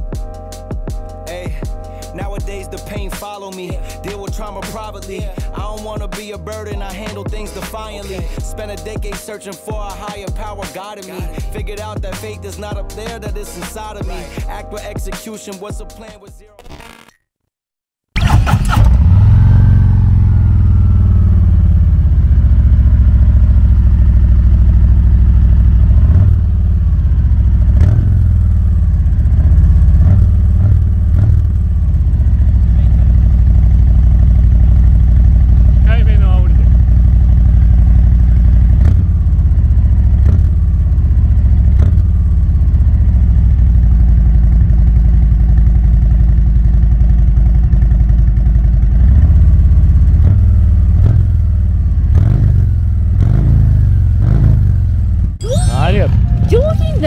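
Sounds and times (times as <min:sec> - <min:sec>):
motorcycle engine revving and idling: 0:04.1 - 0:09.1, 0:18.2 - 0:57.0.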